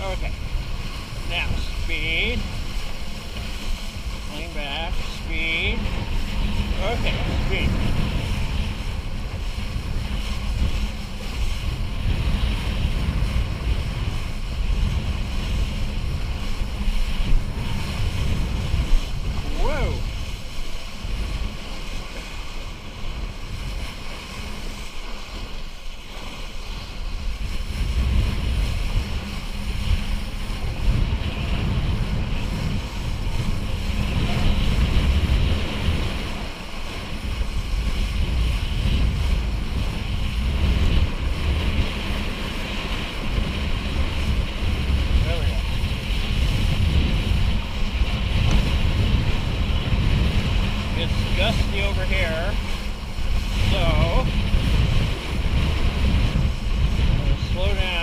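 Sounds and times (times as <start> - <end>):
water rushing under kiteboard: 0.0 - 58.0
wind buffeting microphone: 0.0 - 58.0.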